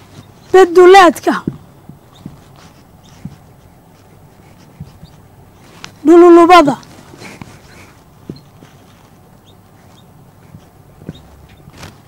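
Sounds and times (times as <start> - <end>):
marker writing on whiteboard: 1.4 - 5.3
light taps of marker: 1.4 - 6.0.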